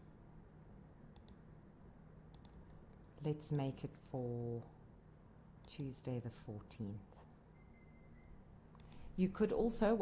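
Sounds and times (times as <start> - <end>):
computer mouse clicks: 1.1 - 1.4, 2.3 - 3.9, 5.6 - 6.0, 8.7 - 9.1.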